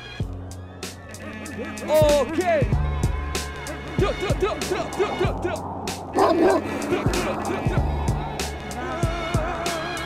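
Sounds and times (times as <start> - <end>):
dog bark sound effect: 6.1 - 6.7.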